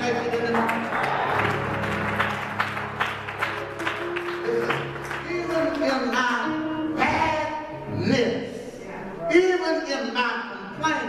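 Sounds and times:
congregation clapping: 0:00.0 - 0:06.7
held instrumental chords: 0:00.0 - 0:09.6.

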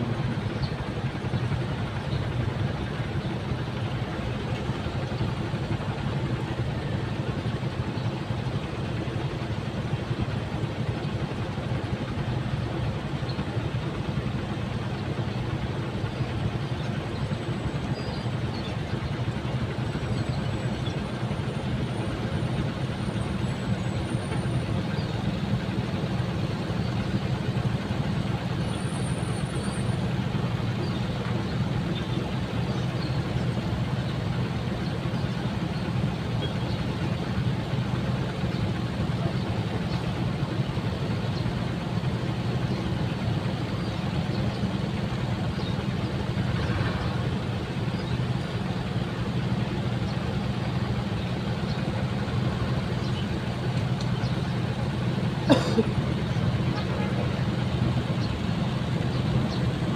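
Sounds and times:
motorcycle engine hum: 0:00.0 - 0:59.9
road noise: 0:00.0 - 0:59.9.

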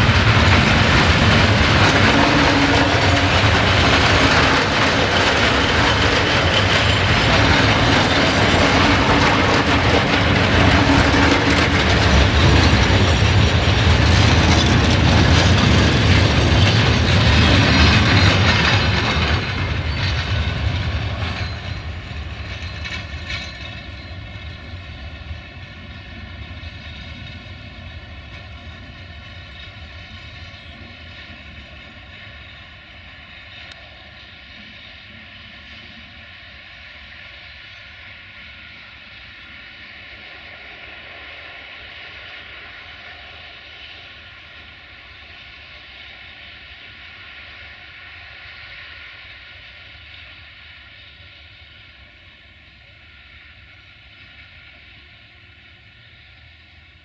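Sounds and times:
freight train rolling past: 0:00.0 - 0:57.0
high ringing from wheels: 0:01.2 - 0:36.3.

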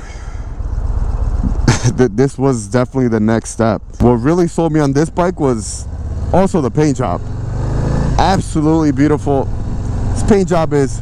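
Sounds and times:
motorcycle engine idling: 0:00.0 - 0:11.0
person laughing: 0:01.4 - 0:02.3.

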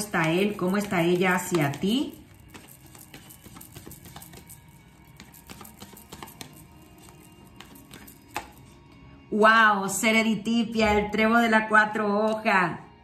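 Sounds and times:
cards being shuffled: 0:00.0 - 0:08.6
soft background music: 0:00.0 - 0:13.0.

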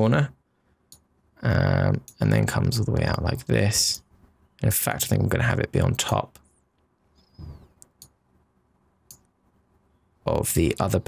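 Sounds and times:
computer mouse clicks: 0:06.8 - 0:08.2, 0:09.1 - 0:09.3.

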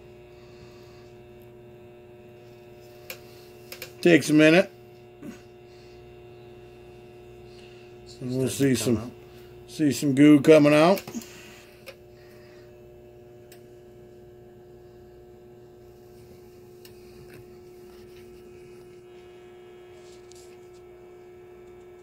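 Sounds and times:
steady electrical hum: 0:00.0 - 0:22.0.

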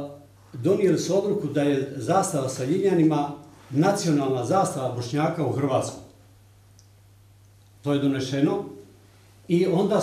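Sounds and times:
man talking: 0:00.0 - 0:06.2, 0:07.8 - 0:08.9, 0:09.5 - 0:10.0
faint low hum: 0:00.0 - 0:10.0.

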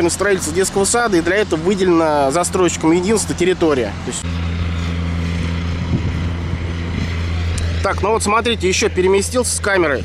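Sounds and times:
low mechanical hum: 0:00.0 - 0:10.0
wind buffeting microphone: 0:03.9 - 0:10.0.

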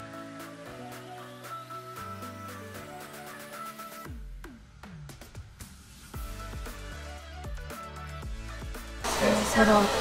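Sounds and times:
hair dryer running: 0:09.0 - 0:10.0
woman speaking: 0:09.1 - 0:10.0.

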